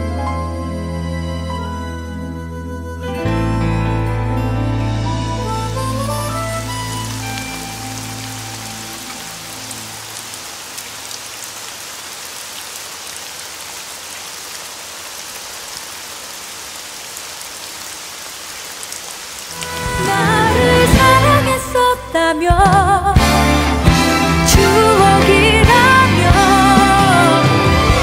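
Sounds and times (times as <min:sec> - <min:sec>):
music: 0:00.0 - 0:10.1, 0:19.5 - 0:28.0
heavy rain on hard surface: 0:05.4 - 0:22.1, 0:23.2 - 0:28.0.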